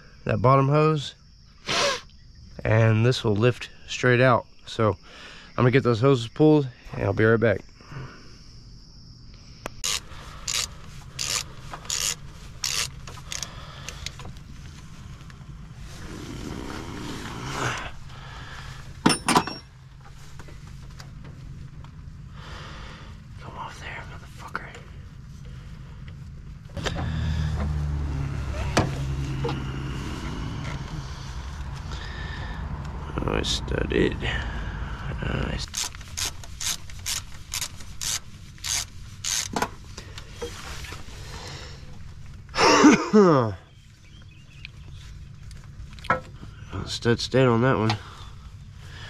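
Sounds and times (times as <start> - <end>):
steady low rumble: 8.8 - 42.9
scraping and rubbing: 9.8 - 18.1, 35.6 - 39.6.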